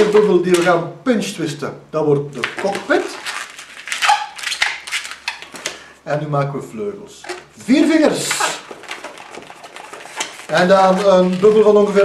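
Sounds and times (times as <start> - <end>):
balloon squeaking while twisted: 2.4 - 5.7, 7.2 - 12.0.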